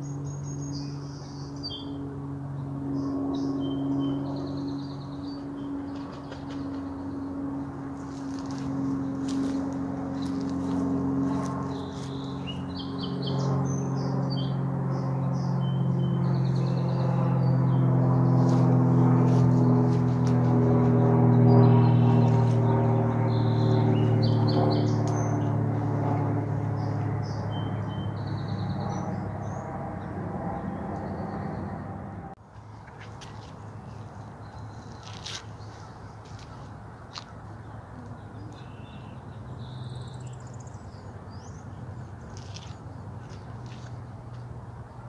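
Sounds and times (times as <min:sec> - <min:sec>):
songbirds chirping: 0:00.0 - 0:25.8, 0:26.7 - 0:31.9, 0:32.8 - 0:45.0
low droning hum: 0:00.0 - 0:32.4.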